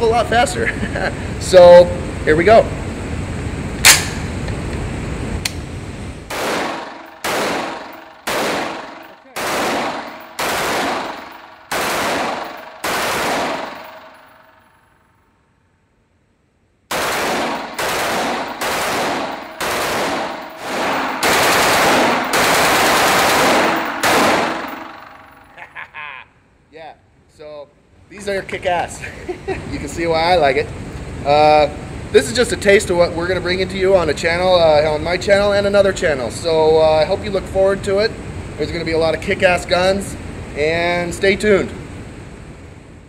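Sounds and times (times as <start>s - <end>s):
rifle single shots: 3.8s - 4.4s, 6.3s - 14.6s, 16.9s - 25.5s
rapid gunfire bursts: 6.3s - 14.4s, 16.9s - 25.4s.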